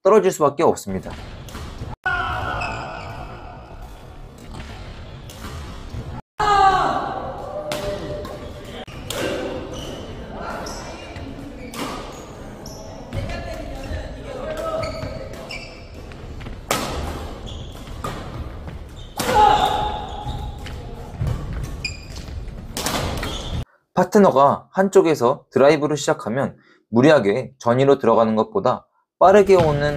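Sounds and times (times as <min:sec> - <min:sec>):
players' voices echoing: 0:02.0 - 0:23.2, 0:24.0 - 0:29.9.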